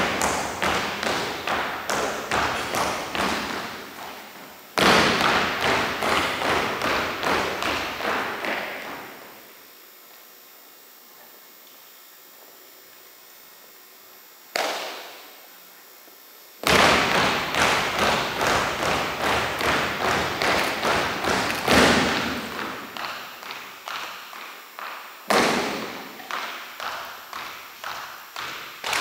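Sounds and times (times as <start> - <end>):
marching steps stamping on wood floor: 0.0 - 9.3, 16.6 - 29.0.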